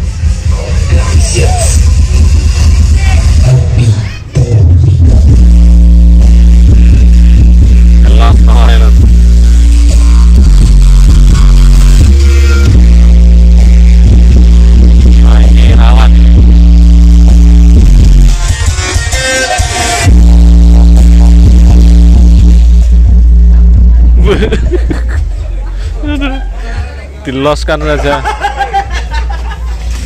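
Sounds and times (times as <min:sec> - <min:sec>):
loud music with heavy bass: 0:00.0 - 0:30.0.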